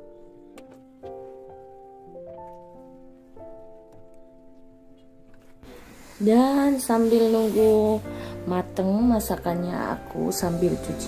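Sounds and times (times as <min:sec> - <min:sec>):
faint rustling: 0:00.0 - 0:08.8
soft sustained chord music: 0:00.0 - 0:11.0.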